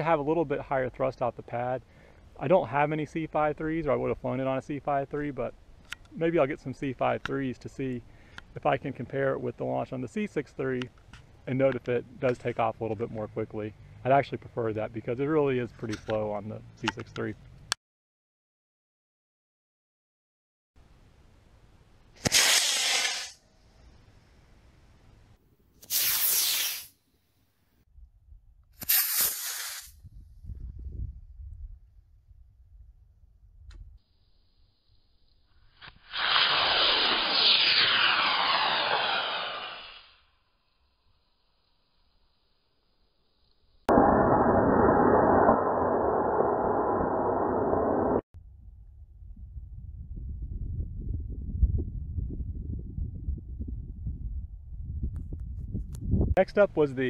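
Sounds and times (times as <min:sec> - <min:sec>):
rocket motor rushing bursts: 0:22.2 - 0:23.4, 0:35.8 - 0:40.3.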